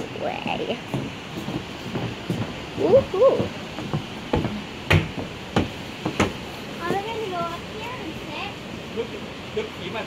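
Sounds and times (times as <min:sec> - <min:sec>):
footsteps on wooden boards: 0:00.7 - 0:07.1.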